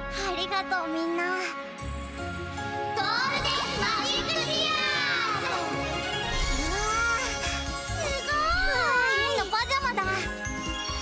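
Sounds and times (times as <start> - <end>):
music: 0.0 - 11.0
children squealing and cheering: 3.0 - 9.5.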